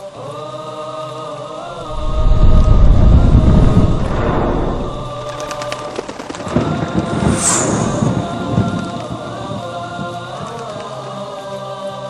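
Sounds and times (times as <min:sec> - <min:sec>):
deep rumble: 0:01.7 - 0:08.9.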